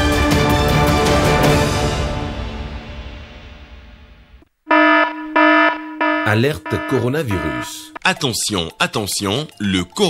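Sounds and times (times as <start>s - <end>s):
long electronic alert beeps: 4.7s - 8.2s
news theme music: 4.7s - 10.0s
person speaking: 6.2s - 10.0s.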